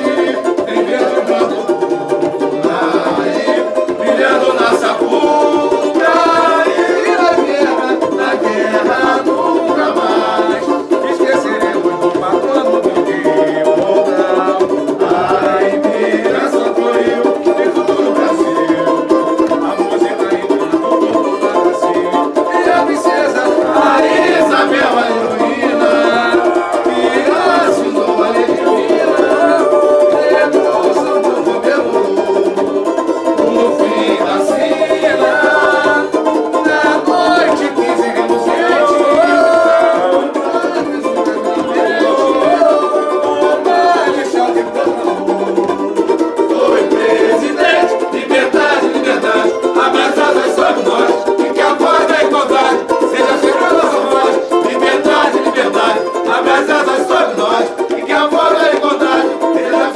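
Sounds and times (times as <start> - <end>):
group singing samba: 0.0 - 59.9
strummed banjos: 0.0 - 59.9.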